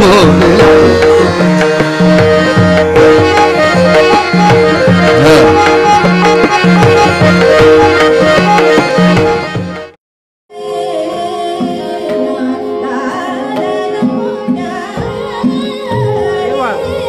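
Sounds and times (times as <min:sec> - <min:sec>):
tabla strokes: 0:00.0 - 0:09.9
harmonium melody: 0:00.0 - 0:10.0, 0:10.6 - 0:17.0.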